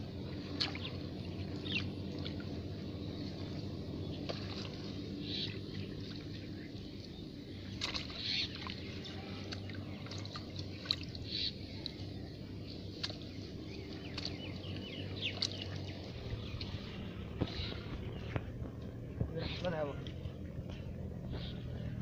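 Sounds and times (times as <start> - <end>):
steady low hum: 0.0 - 22.0
sharp slaps on water: 0.5 - 0.9, 7.8 - 8.8, 13.0 - 13.2, 14.1 - 14.4, 15.3 - 15.8.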